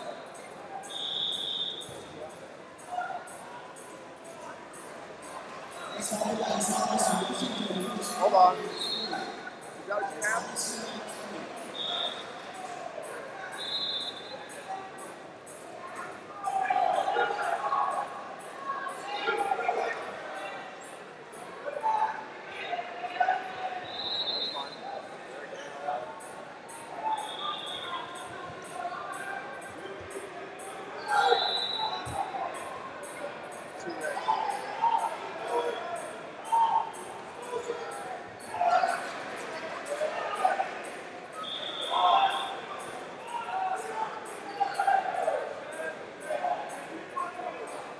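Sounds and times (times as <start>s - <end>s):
voices calling out in hall: 0.0s - 47.9s.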